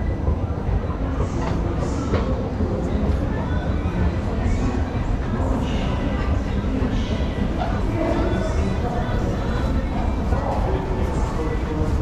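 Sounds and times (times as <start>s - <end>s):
faint hall noise: 0.0s - 12.0s.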